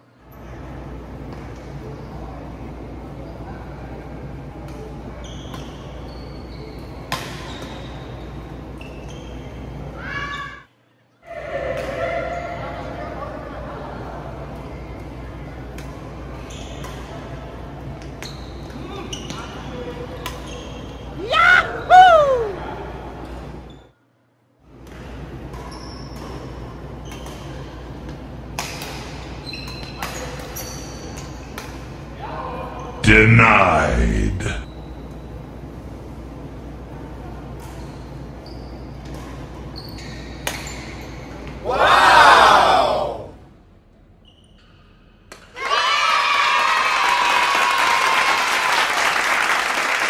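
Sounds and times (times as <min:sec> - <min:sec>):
person crying out: 0:21.2 - 0:22.7
player shouting: 0:21.2 - 0:22.7, 0:33.0 - 0:34.7.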